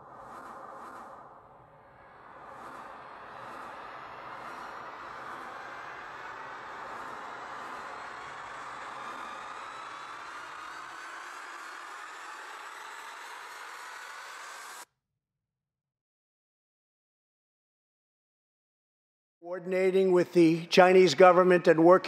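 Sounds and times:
faint rising tones: 0:00.0 - 0:14.8
rushing hiss sound effect: 0:00.0 - 0:14.8.

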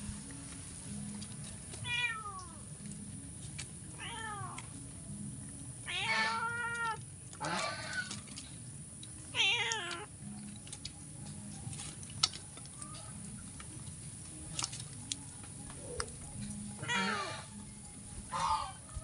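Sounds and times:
crows calling: 0:05.9 - 0:08.2, 0:16.8 - 0:17.6, 0:18.3 - 0:18.8.

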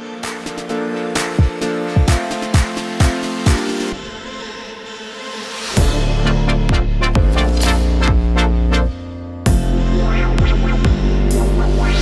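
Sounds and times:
electronic dance music: 0:00.0 - 0:04.2, 0:05.8 - 0:12.0
deep kick drum: 0:05.8 - 0:08.4, 0:09.5 - 0:09.8, 0:10.4 - 0:11.1.

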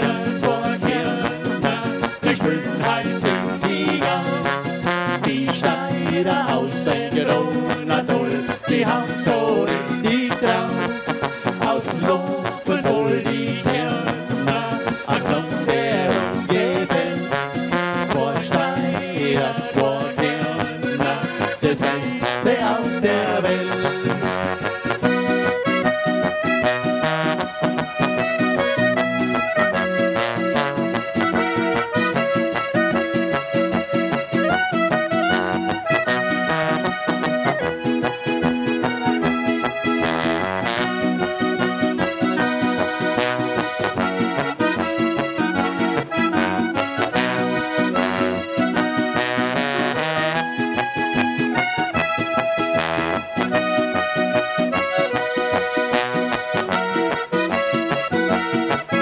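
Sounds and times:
trombone: 0:00.0 - 0:06.6, 0:07.2 - 0:59.0
button accordion: 0:00.0 - 0:59.0
clarinet: 0:00.0 - 0:59.0
electric guitar: 0:00.0 - 0:59.0.

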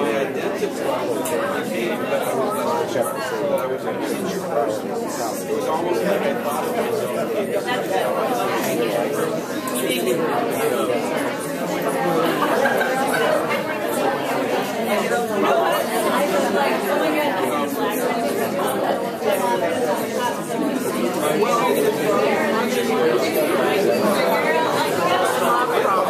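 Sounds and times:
overlapping conversations: 0:00.0 - 0:26.0.

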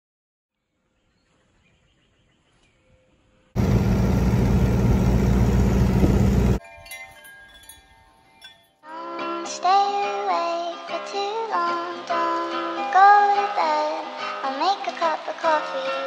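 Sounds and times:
soft chime-like tones: 0:06.6 - 0:08.9.

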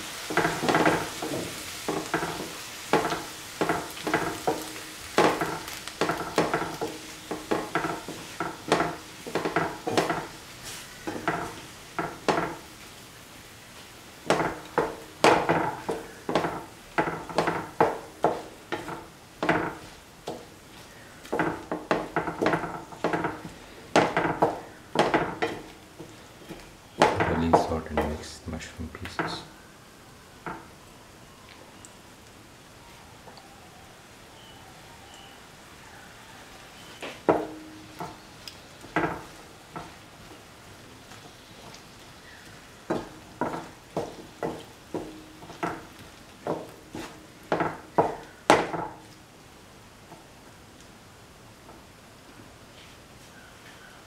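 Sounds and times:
spatula scraping a pan: 0:00.0 - 0:12.7, 0:41.3 - 0:48.8
faint sizzle: 0:00.0 - 0:54.0.

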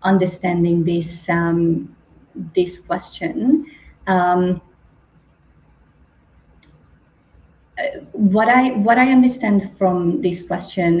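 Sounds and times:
low background hiss: 0:00.0 - 0:11.0
faint click: 0:06.6 - 0:06.9.

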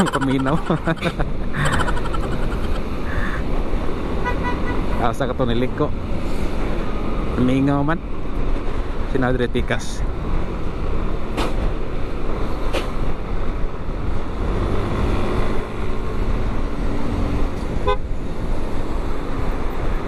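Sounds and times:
vehicle horn toots: 0:04.2 - 0:04.9.

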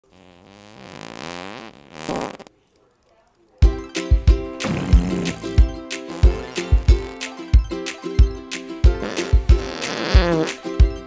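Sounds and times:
long fart: 0:00.0 - 0:02.5, 0:04.6 - 0:07.3, 0:08.9 - 0:10.6.

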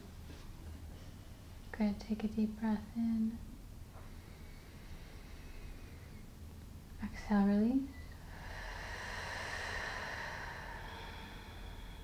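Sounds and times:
slow breathy exhalation: 0:08.0 - 0:12.0.

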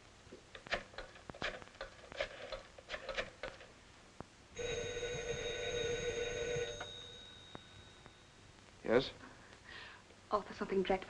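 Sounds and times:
telephone bell ringing: 0:04.6 - 0:08.4.

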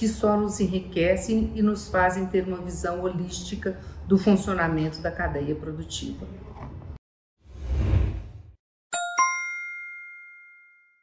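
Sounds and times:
whooshing rush of noise: 0:07.5 - 0:08.6.

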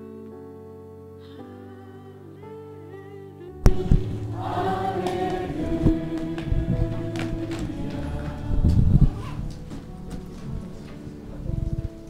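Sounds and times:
voices singing worship music: 0:01.2 - 0:12.0.

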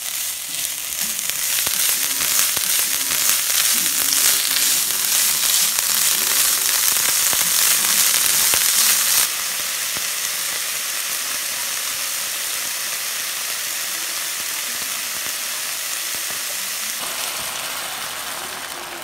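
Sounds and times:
vegetables sizzling in oil: 0:00.0 - 0:19.0.

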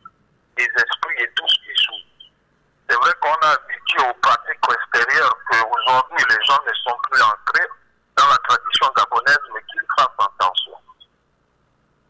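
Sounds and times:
person speaking: 0:00.6 - 0:11.1.

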